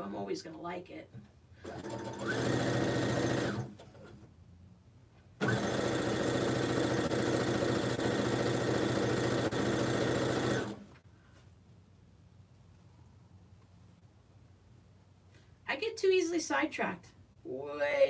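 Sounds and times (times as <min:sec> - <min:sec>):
electric sewing machine stitching: 0:01.6 - 0:04.2, 0:05.4 - 0:11.0.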